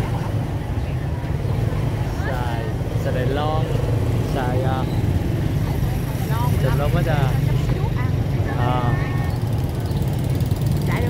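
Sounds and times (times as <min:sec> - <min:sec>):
motorbike traffic rumble: 0:00.0 - 0:11.0
voices calling and talking: 0:00.0 - 0:11.0.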